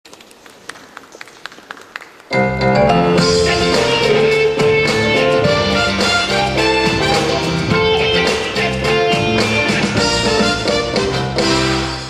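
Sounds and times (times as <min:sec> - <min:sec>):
faint hall background: 0:00.1 - 0:12.0.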